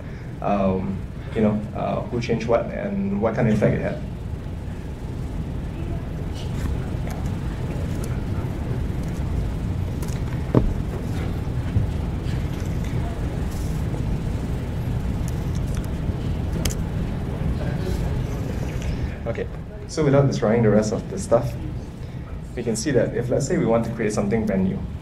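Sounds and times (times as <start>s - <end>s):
low room rumble: 0.0s - 25.0s.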